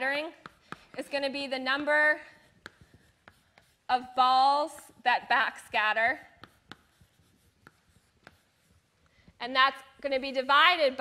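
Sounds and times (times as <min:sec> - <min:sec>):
chalk scratching on blackboard: 0:00.0 - 0:05.0, 0:05.6 - 0:10.5
chalk tapping on blackboard: 0:00.0 - 0:05.0, 0:06.1 - 0:10.1.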